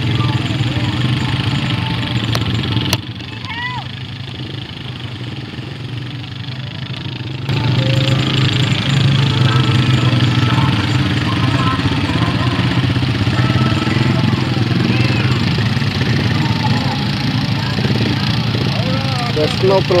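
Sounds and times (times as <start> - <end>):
quad bike engine running: 0.0 - 20.0
wheels churning muddy water: 0.0 - 20.0.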